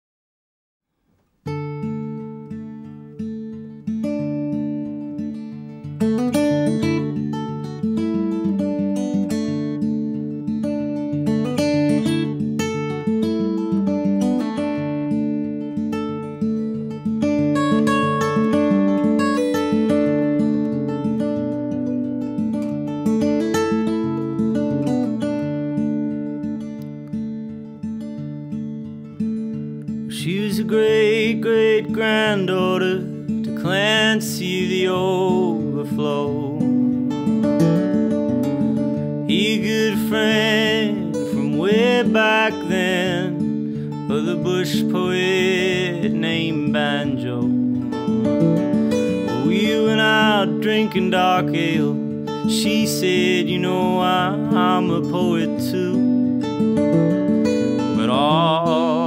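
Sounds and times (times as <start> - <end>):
fingerpicked acoustic guitar: 1.0 - 59.0.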